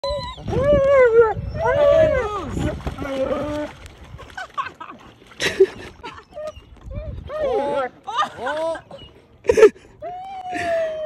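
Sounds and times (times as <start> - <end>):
dog whining: 6.1 - 7.9.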